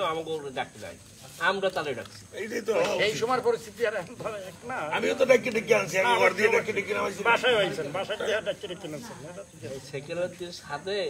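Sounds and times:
faint high hiss: 0:00.0 - 0:11.0
men talking: 0:00.0 - 0:11.0.

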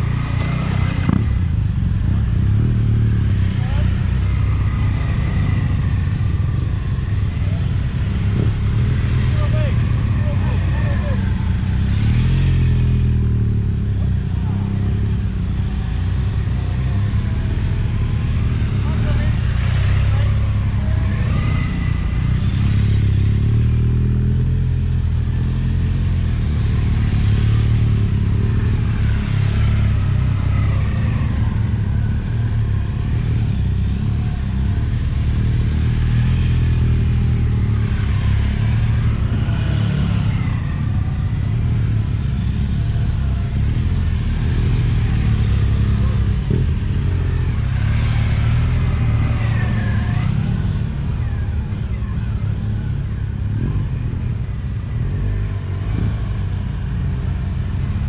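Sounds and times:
constant low rumble: 0:00.0 - 0:58.0
motorcycle engines passing: 0:00.0 - 0:58.0.

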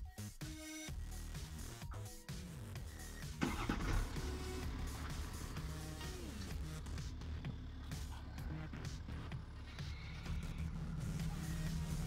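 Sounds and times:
electronic background music: 0:00.0 - 0:12.0
diesel car engine starting: 0:02.7 - 0:12.0.

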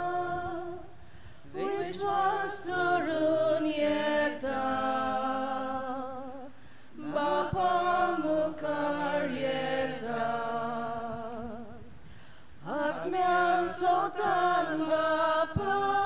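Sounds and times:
choir singing a hymn: 0:00.0 - 0:11.9, 0:12.6 - 0:16.0.

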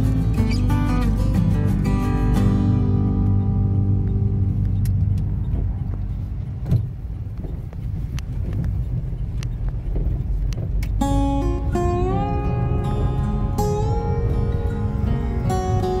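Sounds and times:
car road rumble: 0:00.0 - 0:16.0.

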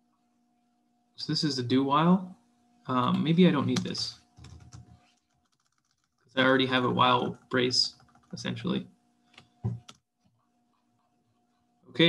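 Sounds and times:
faint keyboard keystrokes: 0:03.0 - 0:06.1.

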